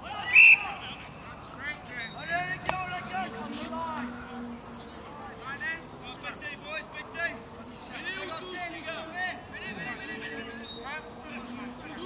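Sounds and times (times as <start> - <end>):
voices shouting: 0.0 - 12.0
referee's whistle blast: 0.2 - 0.7.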